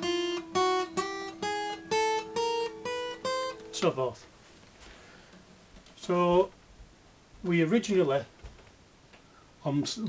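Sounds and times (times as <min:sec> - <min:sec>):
acoustic guitar single notes rising: 0:00.0 - 0:04.0.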